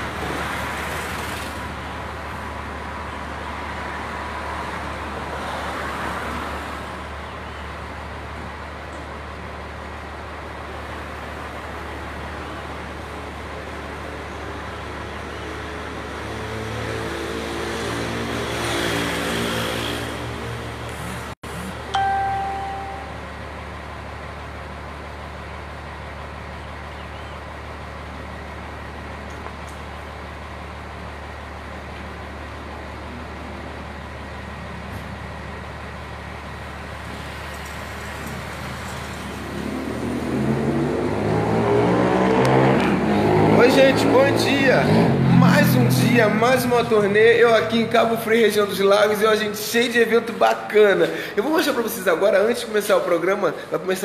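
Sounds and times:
traffic hum: 0:00.0 - 0:54.0
brief single tone: 0:21.9 - 0:23.4
vehicle engine passing: 0:37.2 - 0:48.8.

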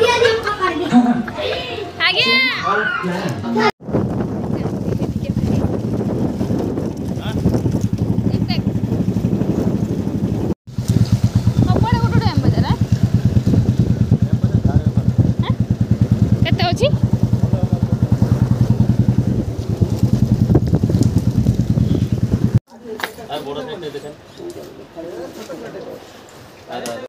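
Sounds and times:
motorbike engine running: 0:04.0 - 0:22.6
voices: 0:11.4 - 0:19.1.

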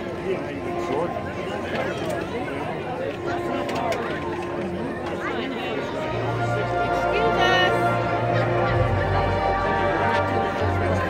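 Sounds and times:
marching band playing: 0:00.0 - 0:11.0.

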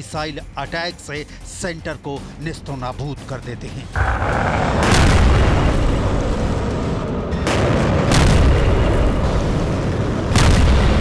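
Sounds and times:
sharp blast: 0:04.0 - 0:09.7
rumble of missile launches: 0:04.0 - 0:11.0.

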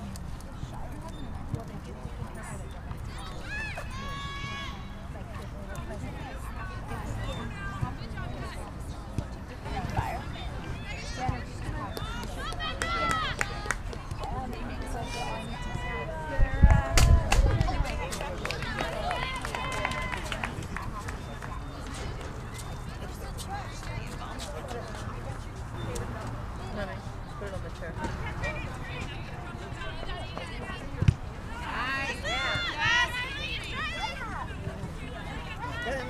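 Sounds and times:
people shouting and calling out: 0:09.7 - 0:20.4, 0:31.4 - 0:36.0.

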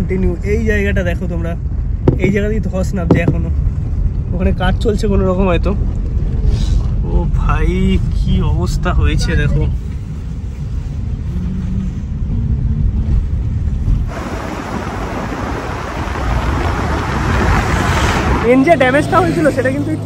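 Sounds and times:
car engine and tyre rumble: 0:00.0 - 0:20.0
rushing hiss of wind: 0:14.0 - 0:18.4.

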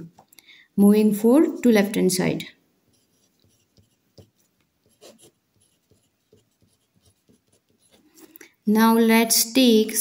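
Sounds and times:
pen scratching on paper: 0:02.9 - 0:08.1.

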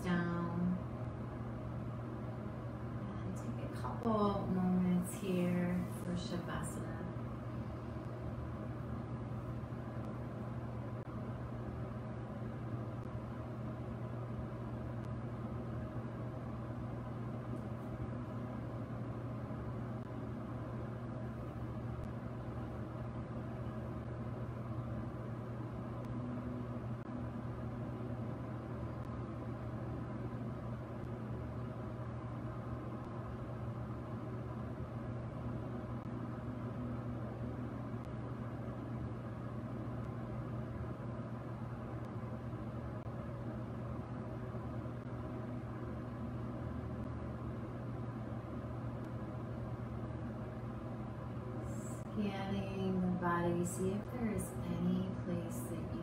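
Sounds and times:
low hum: 0:00.0 - 0:56.0.

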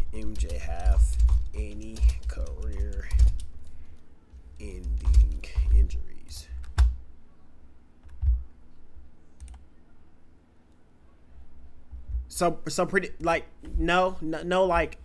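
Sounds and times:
typing on keyboard: 0:00.1 - 0:03.5, 0:04.8 - 0:05.8.

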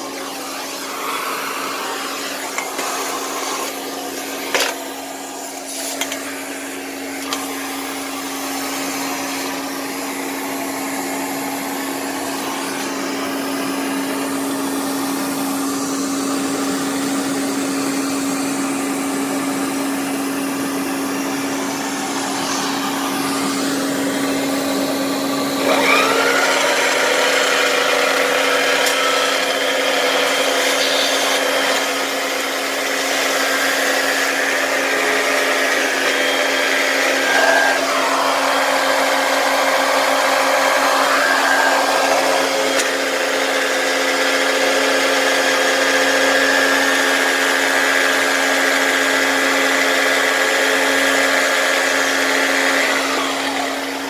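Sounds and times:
vacuum cleaner running: 0:00.0 - 0:54.0.

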